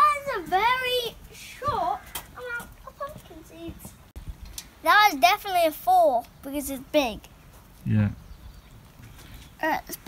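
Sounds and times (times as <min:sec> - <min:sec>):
children talking quietly: 0:00.0 - 0:08.1, 0:09.3 - 0:10.0.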